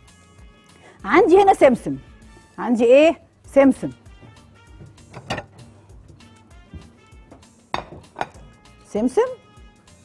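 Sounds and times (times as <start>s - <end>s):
soft background music: 0.0s - 10.0s
kitchen bowls and utensils clinking: 4.1s - 8.6s.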